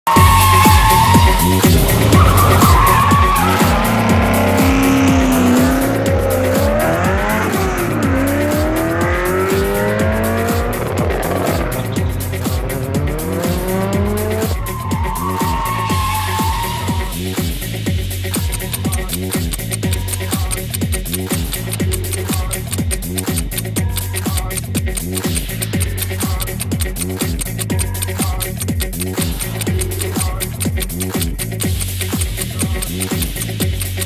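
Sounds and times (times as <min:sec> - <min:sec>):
music with steady beat: 0:00.0 - 0:34.0
tyres squealing: 0:00.0 - 0:34.0
race car engines revving: 0:00.1 - 0:34.0.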